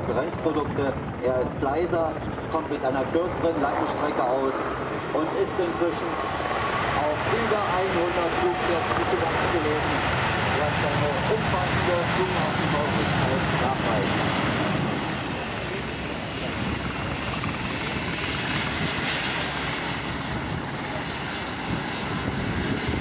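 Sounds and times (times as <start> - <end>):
jet engine noise: 0.0 - 23.0.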